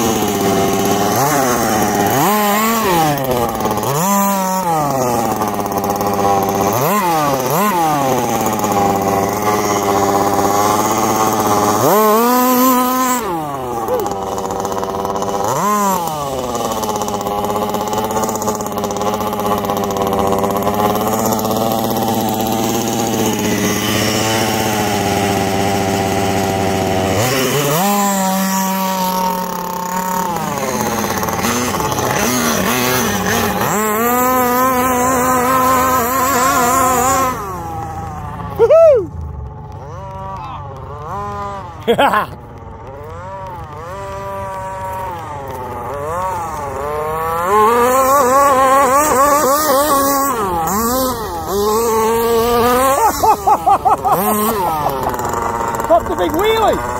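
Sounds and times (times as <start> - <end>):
small two-stroke engine revving: 0.0 - 56.9.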